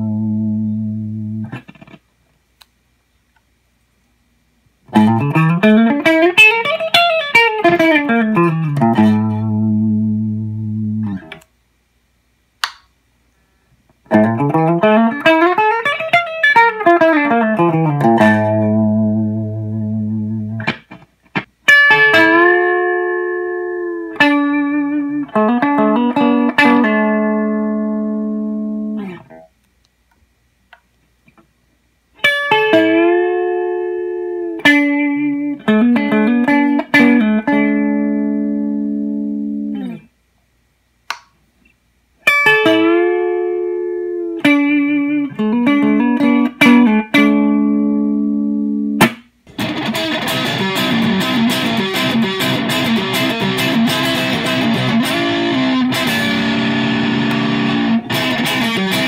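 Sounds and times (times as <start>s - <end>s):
electric guitar playing: 0.0s - 2.0s, 4.9s - 11.5s, 14.1s - 29.4s, 32.2s - 40.1s, 42.2s - 59.0s.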